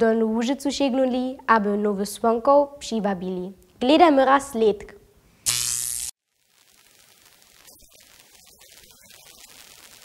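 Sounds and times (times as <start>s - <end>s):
loud electric buzz: 5.4s - 10.0s.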